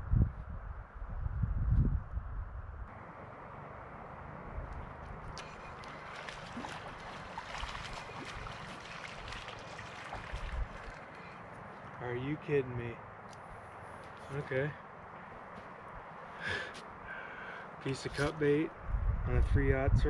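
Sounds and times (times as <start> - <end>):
wind rumbling on microphone: 0.0 - 12.0, 18.0 - 20.0
wind: 0.0 - 20.0
flowing river water: 2.9 - 12.4.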